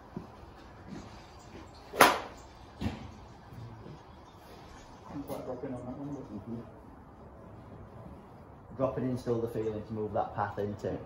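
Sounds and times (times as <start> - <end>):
golf club striking ball: 2.0 - 2.4.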